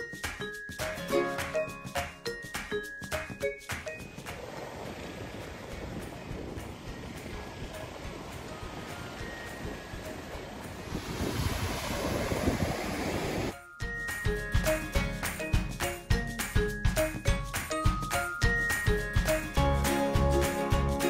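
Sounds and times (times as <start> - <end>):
surf breaking on shore: 4.2 - 13.5
wind on microphone: 4.4 - 13.5.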